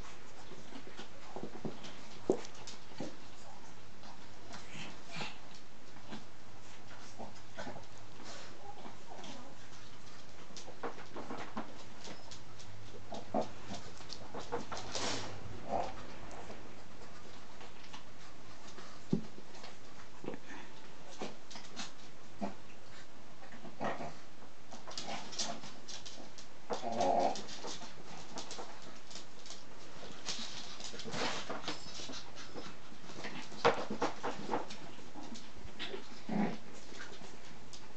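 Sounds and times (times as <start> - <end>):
dogs making soft vocal sounds: 0.0 - 37.9.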